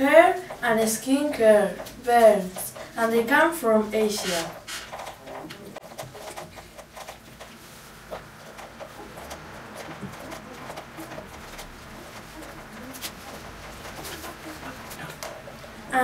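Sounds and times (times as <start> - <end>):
citrus juicer squeaking and creaking: 4.0 - 16.0.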